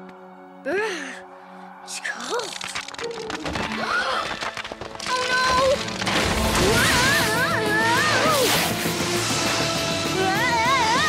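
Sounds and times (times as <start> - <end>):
film score music: 0.0 - 11.0
ice crashing and rushing: 2.3 - 10.3.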